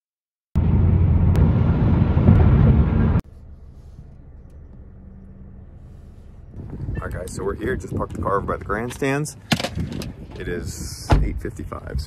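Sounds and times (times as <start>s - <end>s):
road and engine rumble: 0.5s - 12.0s
low hum inside car: 0.6s - 8.8s.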